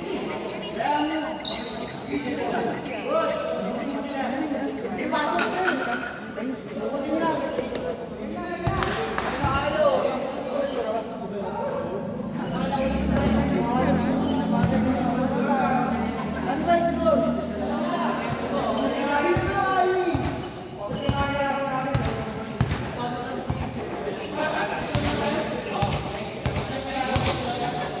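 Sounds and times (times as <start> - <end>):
people talking in echoing hall: 0.0 - 28.0
basketball bouncing on court: 19.3 - 22.9.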